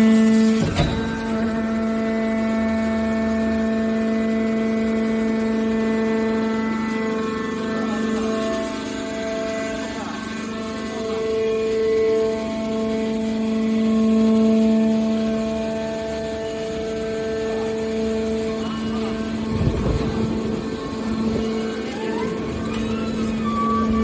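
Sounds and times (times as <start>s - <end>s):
hydraulic power unit humming: 0.0s - 24.0s
whine rising in pitch: 0.0s - 24.0s.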